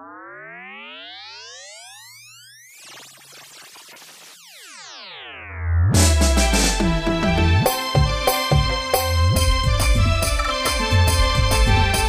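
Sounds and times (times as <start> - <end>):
burst of noise with falling tones: 0.0 - 5.8
rising synthesizer tone sweep: 0.0 - 6.8.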